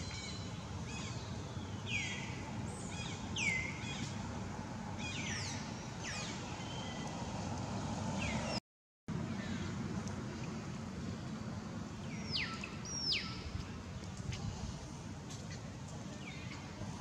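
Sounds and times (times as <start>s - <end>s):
low background noise: 0.0s - 17.0s.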